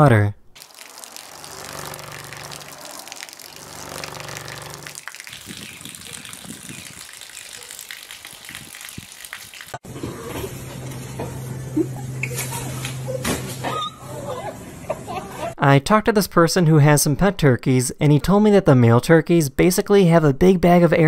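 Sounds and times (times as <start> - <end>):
water pouring from tube: 0.6 - 9.8.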